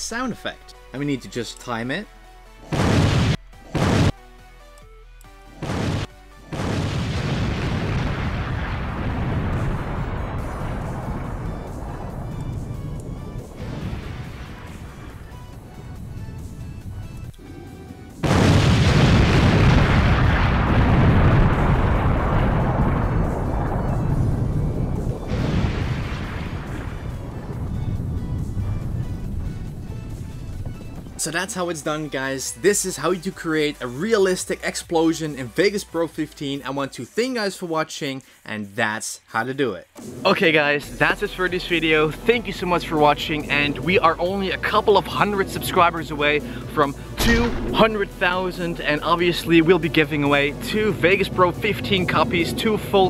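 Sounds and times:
explosion blast with rumble: 2.7 - 4.2, 5.6 - 17.1, 18.1 - 31.2, 47.2 - 48.2.

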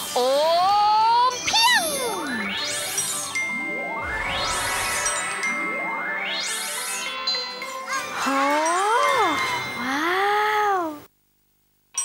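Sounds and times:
shimmering chime glissandos: 2.2 - 9.8.

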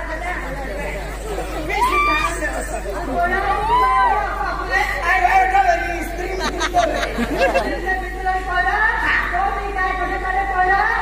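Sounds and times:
performers talking through microphone: 0.0 - 11.0
steady low hum: 0.0 - 11.0.

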